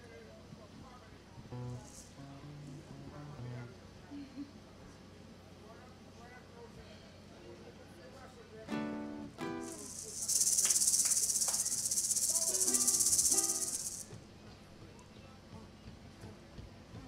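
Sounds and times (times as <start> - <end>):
maracas rattling: 9.5 - 14.1.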